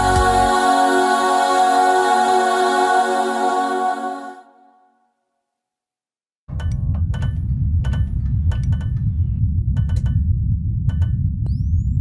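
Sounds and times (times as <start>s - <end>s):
deep rumble: 6.5s - 12.0s.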